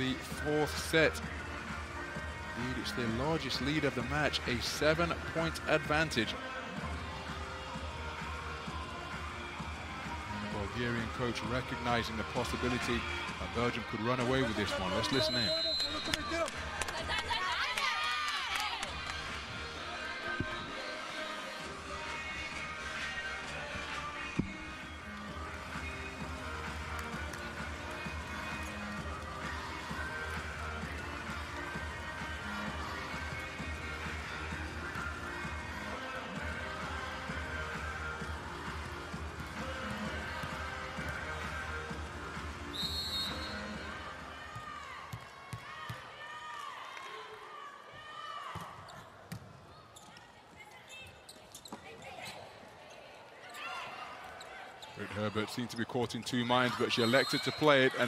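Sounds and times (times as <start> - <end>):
short whistle: 15.2 - 16.3, 42.7 - 43.7, 57.0 - 57.6
shoes squeaking on court: 48.8 - 55.2.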